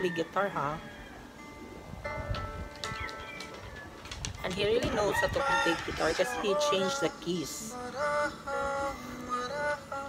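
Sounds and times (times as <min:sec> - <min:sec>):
acoustic guitar chords ringing: 0:00.3 - 0:03.6, 0:07.0 - 0:10.0.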